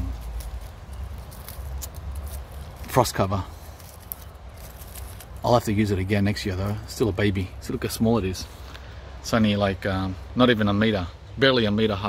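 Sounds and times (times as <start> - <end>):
leaves rustling and crackling: 0.0 - 10.7.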